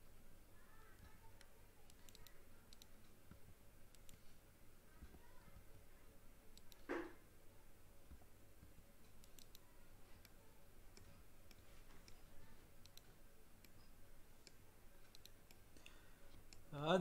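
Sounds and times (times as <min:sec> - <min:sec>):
computer mouse clicks: 0:01.0 - 0:04.4, 0:06.5 - 0:07.1, 0:09.0 - 0:16.7.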